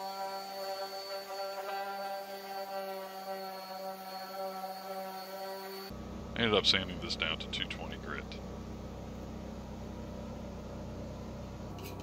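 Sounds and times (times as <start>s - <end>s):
orbital sander running: 0.0s - 6.0s.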